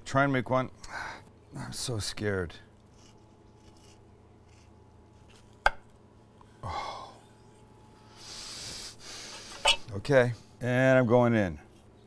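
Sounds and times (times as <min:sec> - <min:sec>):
knife rasping through crust: 0:02.9 - 0:04.8.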